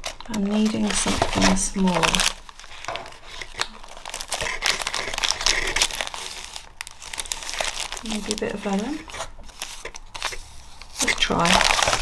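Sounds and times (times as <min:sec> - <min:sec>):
plastic packets crinkling: 0:00.0 - 0:12.0.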